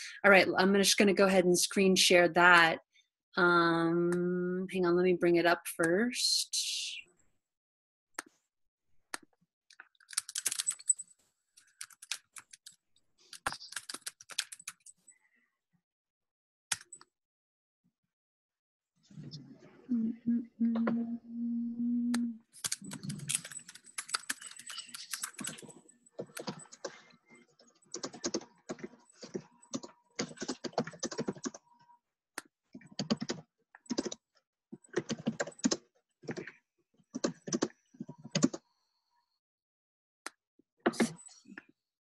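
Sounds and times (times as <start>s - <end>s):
typing on computer keyboard: 9.8s - 11.0s, 11.6s - 15.0s, 22.6s - 27.0s, 27.9s - 31.6s, 32.8s - 34.2s, 34.9s - 36.5s, 37.2s - 38.6s.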